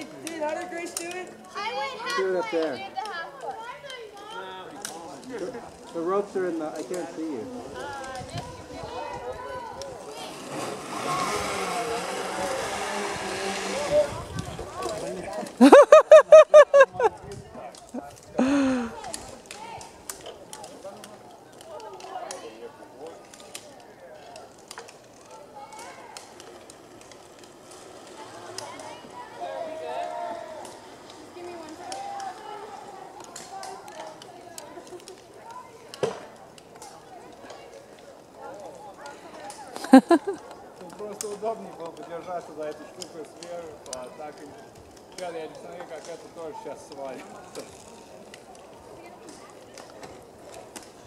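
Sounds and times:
distant people talking and calling: 0.0 - 51.0.

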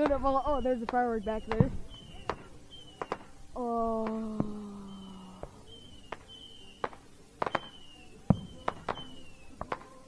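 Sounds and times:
distant fireworks popping: 0.0 - 10.0.

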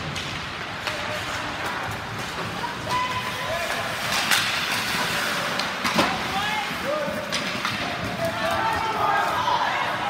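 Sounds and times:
hiss of play on ice: 0.0 - 8.5
hockey sticks and puck knocking: 0.0 - 9.4.

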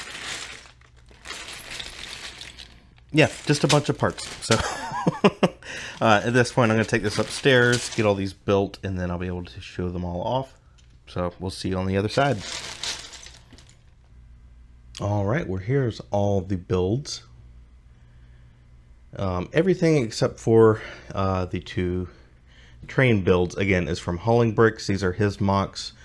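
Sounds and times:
plastic bricks clattering in a bag: 0.0 - 5.2, 5.8 - 8.3, 12.1 - 13.9
faint low hum: 0.0 - 26.0.

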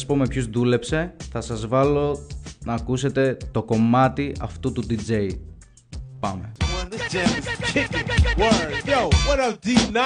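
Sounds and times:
rapping over a beat: 6.6 - 10.0.

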